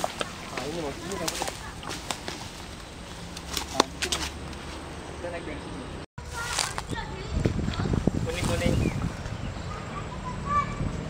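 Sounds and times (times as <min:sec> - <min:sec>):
branches swishing and snapping: 0:00.0 - 0:04.9, 0:06.2 - 0:09.4.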